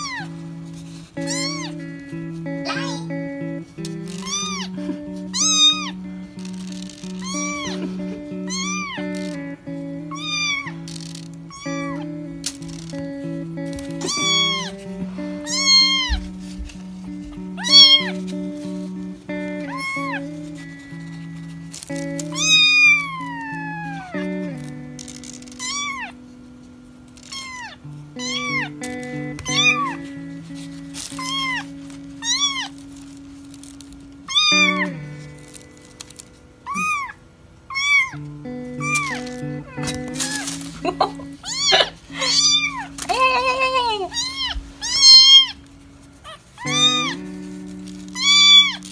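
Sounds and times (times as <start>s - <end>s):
kitten mewing: 0.0s - 0.4s, 1.1s - 13.0s, 13.6s - 18.7s, 19.4s - 21.3s, 22.0s - 26.2s, 27.2s - 32.8s, 34.2s - 45.6s, 46.2s - 48.9s
background music with held notes: 0.0s - 48.9s.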